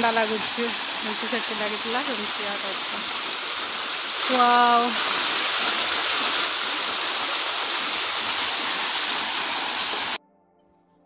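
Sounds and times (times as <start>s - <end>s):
water pouring down rock: 0.0s - 10.2s.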